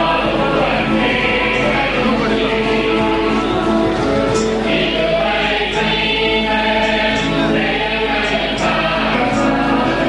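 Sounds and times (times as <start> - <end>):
choir singing a hymn: 0.0 - 10.0.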